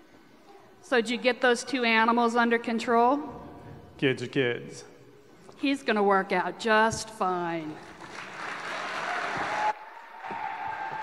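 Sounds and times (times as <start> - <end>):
audience applauding: 7.8 - 11.0.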